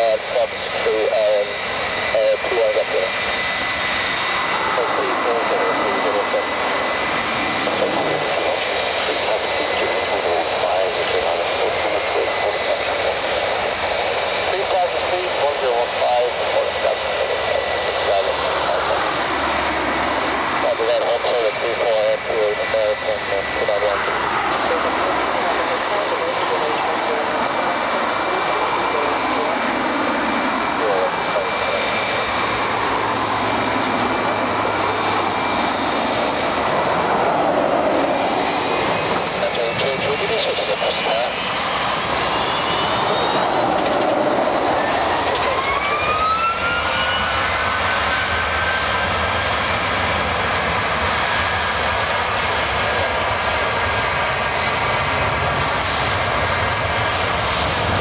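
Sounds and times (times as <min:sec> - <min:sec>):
jet engines roaring with whine: 0:00.0 - 0:58.0.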